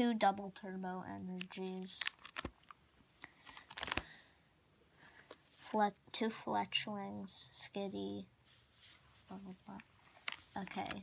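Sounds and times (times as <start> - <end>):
plastic sleeve pages clicking and crinkling: 1.3 - 4.1, 9.7 - 11.0.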